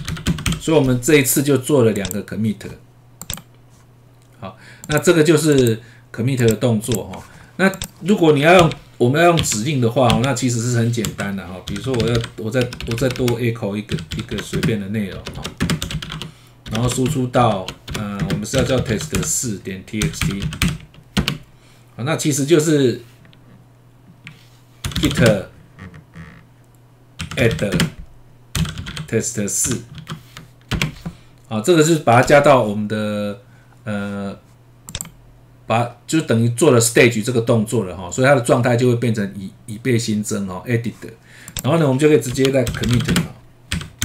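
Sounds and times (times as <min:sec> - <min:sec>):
computer keyboard clicks: 0:00.0 - 0:00.6, 0:03.2 - 0:03.5, 0:04.8 - 0:05.7, 0:11.1 - 0:17.2, 0:34.9 - 0:35.2
low electrical hum: 0:00.0 - 0:44.0.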